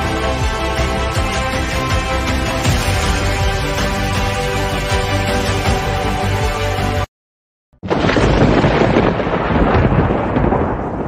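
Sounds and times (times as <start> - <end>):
thunder rumbling with crackle: 7.8 - 11.0.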